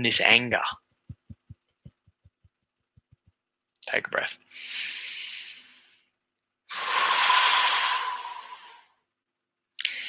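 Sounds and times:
man breathing in deeply: 0:04.5 - 0:06.1.

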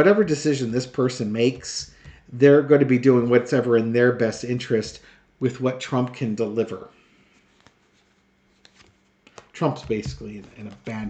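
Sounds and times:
quiet room hum: 0:00.0 - 0:11.0
soft card clicks: 0:08.6 - 0:11.0.

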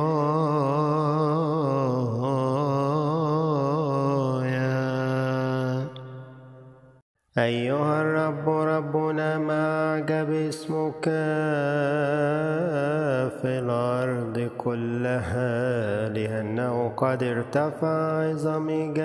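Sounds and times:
man chanting with vibrato: 0:00.0 - 0:06.7, 0:07.4 - 0:19.0.

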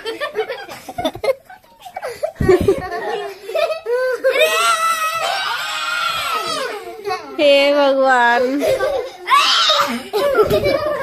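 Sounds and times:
girl screaming: 0:04.3 - 0:06.7, 0:09.3 - 0:10.0.

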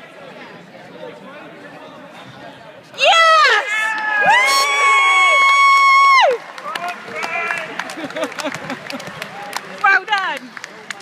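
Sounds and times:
high-pitched cheering yell: 0:03.0 - 0:06.4.

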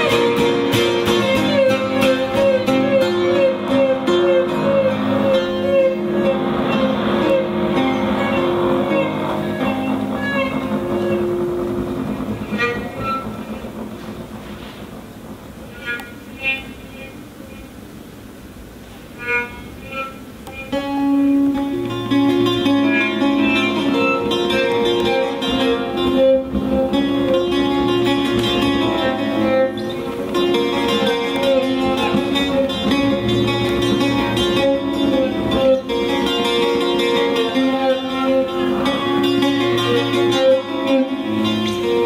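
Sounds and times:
saz plucked notes: 0:00.0 - 0:42.0
violin: 0:00.0 - 0:42.0.

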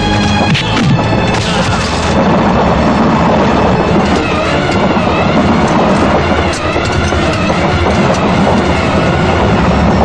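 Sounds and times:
train rumbling over rails: 0:00.0 - 0:10.0
wheels clattering on track: 0:00.0 - 0:10.0.

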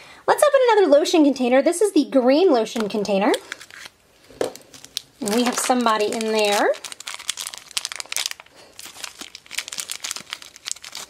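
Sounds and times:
plastic bag crinkling: 0:02.7 - 0:11.0.

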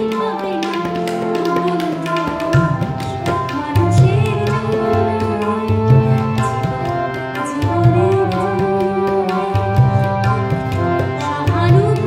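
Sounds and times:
woman singing: 0:00.0 - 0:12.0
tabla finger taps: 0:00.1 - 0:12.0.

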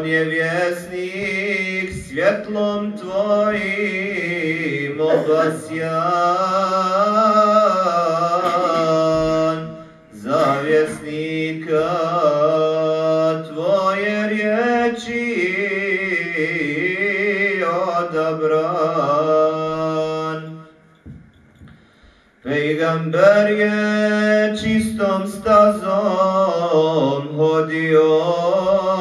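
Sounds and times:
man chanting devotional melody: 0:00.0 - 0:21.2, 0:22.4 - 0:29.0.

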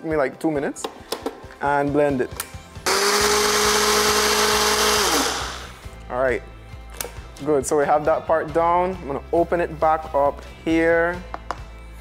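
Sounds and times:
blender running: 0:02.9 - 0:05.8.

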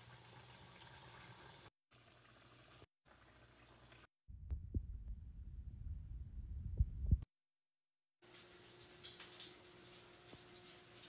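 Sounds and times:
microphone handling rumble: 0:04.3 - 0:07.3.

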